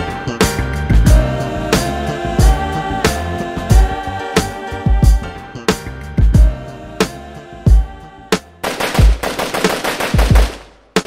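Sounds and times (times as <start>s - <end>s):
machine-gun fire: 8.6s - 11.0s.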